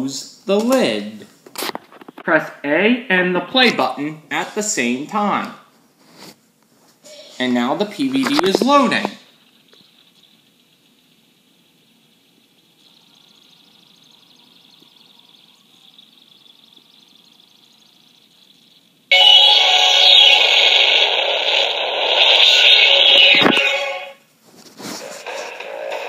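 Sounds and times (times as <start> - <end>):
faint high whine: 7.0 - 26.0
intro music from small speaker: 19.1 - 24.3, 25.0 - 26.0.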